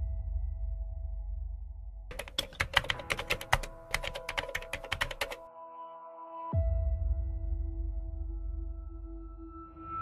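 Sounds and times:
keyboard keystrokes clicking: 2.1 - 5.4.

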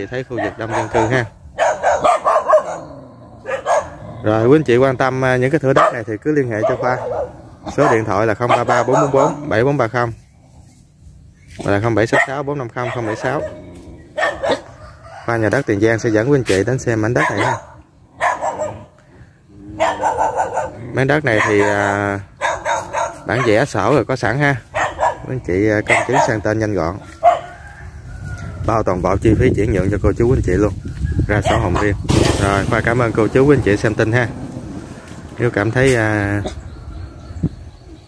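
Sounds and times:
dog barking: 0.3 - 4.0, 5.6 - 9.6, 12.0 - 14.8, 17.0 - 19.0, 19.7 - 23.8, 24.7 - 27.7, 31.4 - 31.9.

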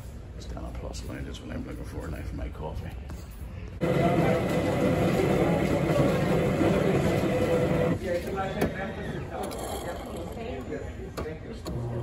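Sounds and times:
coffee machine whirring: 3.8 - 8.2.

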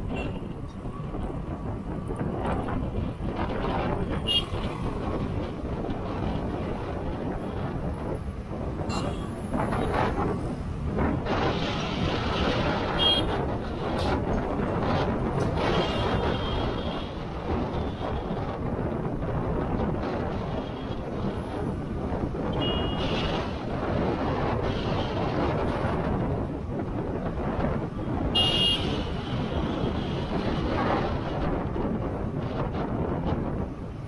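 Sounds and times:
wind and road noise: 0.0 - 34.0
vehicle horn toots: 22.6 - 23.3, 28.3 - 29.1.

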